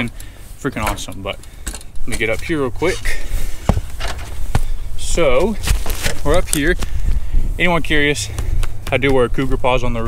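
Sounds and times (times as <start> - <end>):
wind rumble on microphone: 1.9 - 10.0
heavy footsteps on roof: 3.6 - 4.8.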